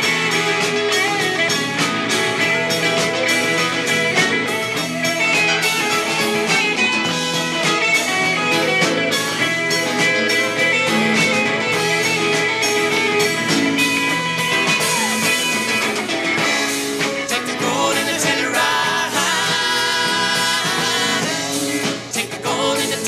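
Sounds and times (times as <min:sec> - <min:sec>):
bass guitar: 0:00.0 - 0:23.0
drum kit: 0:00.0 - 0:23.0
electric guitars: 0:00.0 - 0:23.0.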